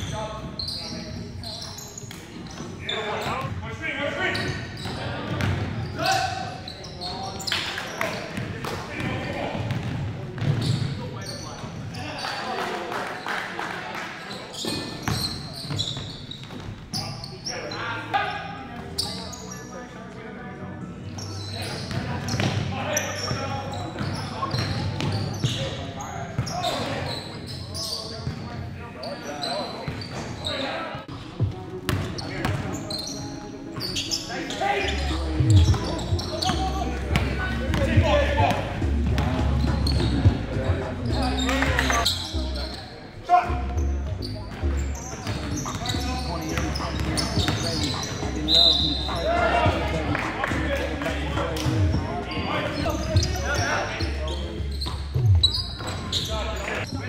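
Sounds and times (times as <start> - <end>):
echoing voices: 0.0 - 57.0.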